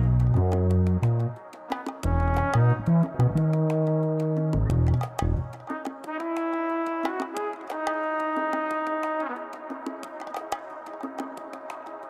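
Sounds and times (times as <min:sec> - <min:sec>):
steady ticking beat: 0:02.0 - 0:05.8.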